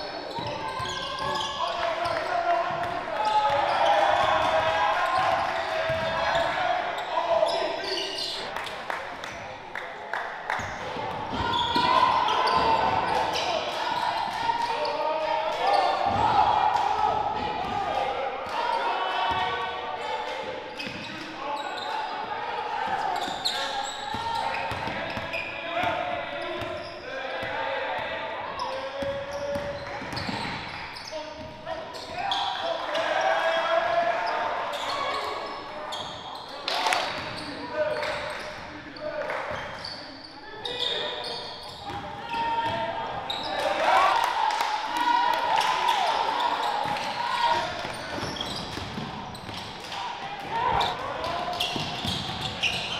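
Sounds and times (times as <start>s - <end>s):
players and coaches calling out: 0.0s - 52.9s
ball bouncing on hardwood court: 48.1s - 49.7s.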